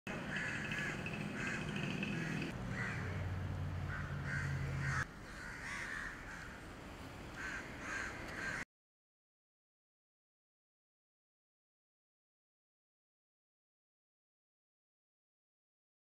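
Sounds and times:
birds calling: 0:00.1 - 0:06.7, 0:07.4 - 0:08.6.

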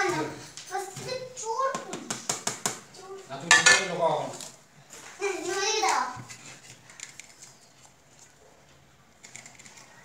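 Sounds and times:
metal utensils clinking on pots: 0:03.4 - 0:04.1.

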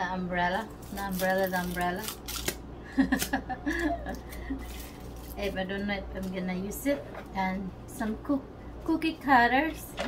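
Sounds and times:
woman laughing: 0:02.8 - 0:04.7.

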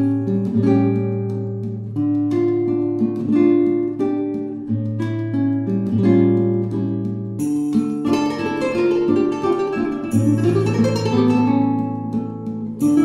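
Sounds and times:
acoustic guitar slow tune: 0:00.0 - 0:13.0.

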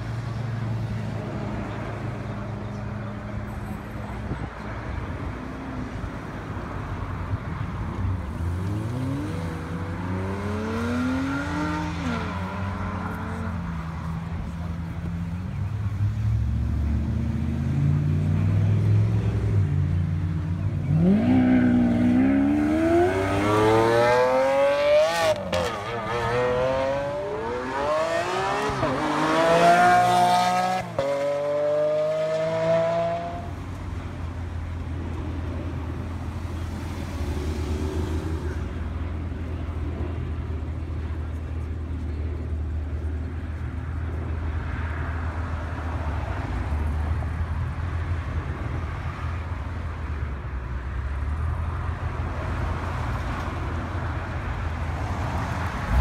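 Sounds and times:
sports car engine revving: 0:20.8 - 0:33.5.

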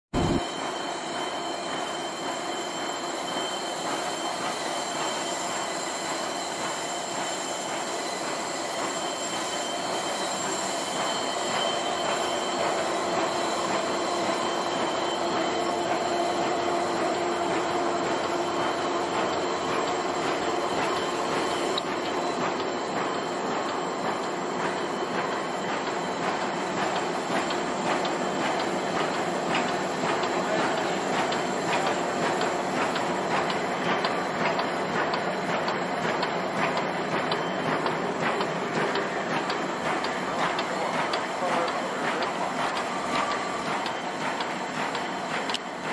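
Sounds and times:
machine running with whine: 0:00.2 - 0:45.9.

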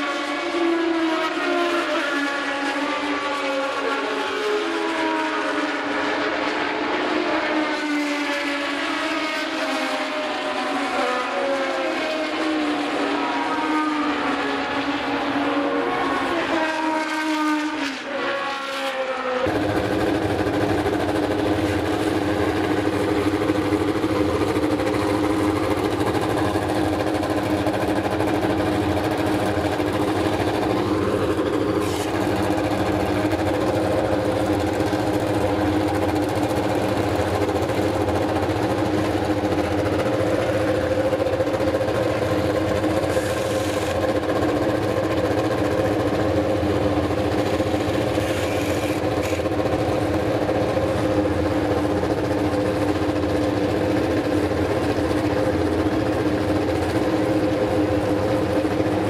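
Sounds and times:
engine idling: 0:19.4 - 0:59.0.

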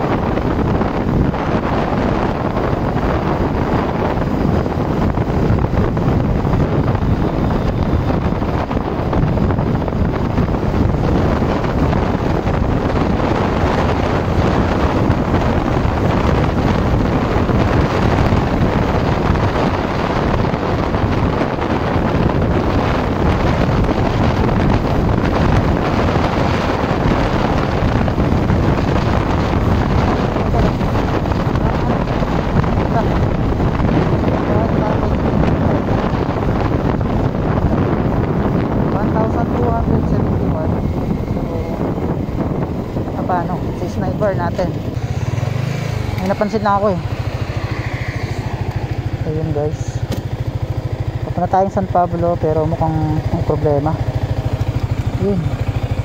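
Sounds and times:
motorcycle engine: 0:00.0 - 0:56.0
road noise: 0:00.0 - 0:56.0
wind rush on microphone: 0:00.0 - 0:56.0.

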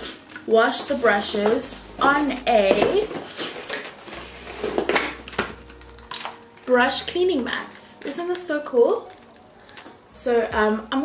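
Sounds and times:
packaging rustling: 0:00.2 - 0:06.7.

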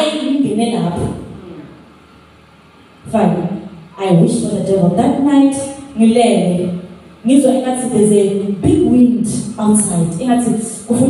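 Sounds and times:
woman's amplified speech: 0:00.0 - 0:01.4, 0:03.0 - 0:11.0
low steady background rumble: 0:00.0 - 0:11.0.

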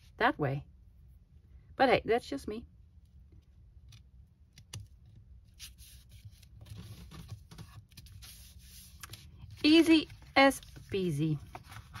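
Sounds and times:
paper rubbing and rustling: 0:05.5 - 0:12.0.

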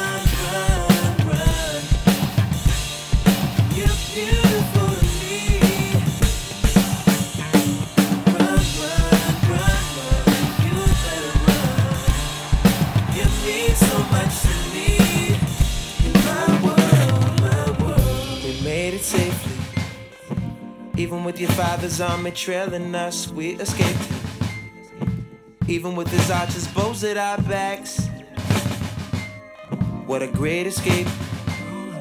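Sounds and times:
drum kit playing: 0:00.0 - 0:22.4, 0:23.6 - 0:31.7
recorded instrumental music: 0:00.0 - 0:32.0.

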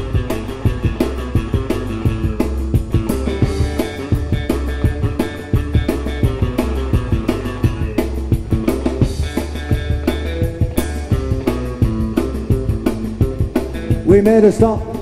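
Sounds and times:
drum kit steady beat: 0:00.0 - 0:15.0
electric guitars: 0:00.0 - 0:15.0.

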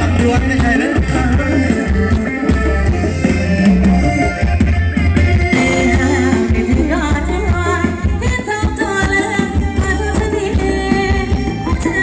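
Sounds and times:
person singing: 0:00.0 - 0:04.4
live band music: 0:00.0 - 0:12.0.

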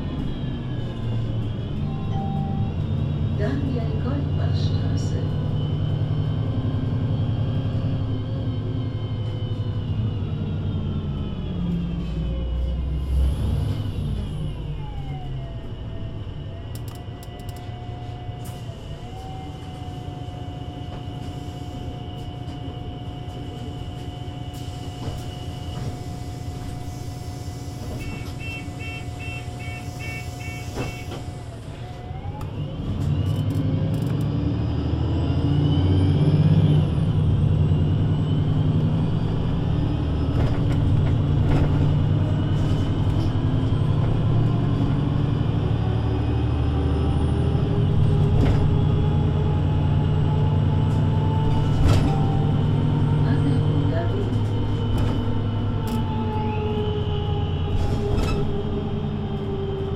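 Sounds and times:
bus engine idling and pulling away: 0:00.0 - 0:59.9
short beeps: 0:28.0 - 0:31.1.

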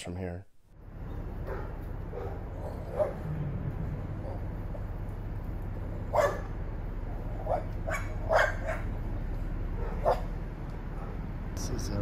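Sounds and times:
low rumble: 0:00.7 - 0:11.4
dog barking: 0:01.4 - 0:03.3, 0:06.1 - 0:06.6, 0:07.4 - 0:09.0, 0:09.7 - 0:11.3.

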